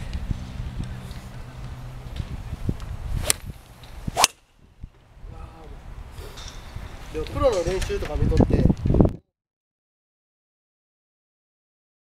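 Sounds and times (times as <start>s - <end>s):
club swish: 3.2s - 3.5s, 4.1s - 4.4s
golf club striking ball: 3.2s - 4.4s.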